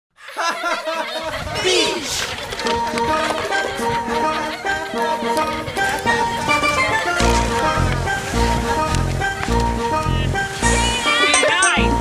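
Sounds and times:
laughter falling in pitch: 0.2 - 1.9
music with held notes: 2.5 - 12.0.

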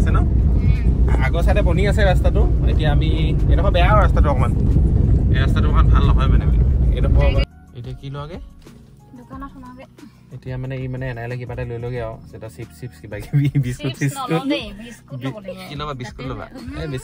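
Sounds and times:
car and tyres rumbling: 0.0 - 7.5.

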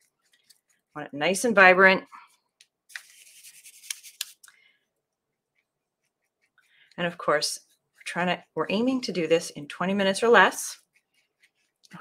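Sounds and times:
paintbrush scratchy rustle: 0.0 - 4.5, 5.3 - 12.0.

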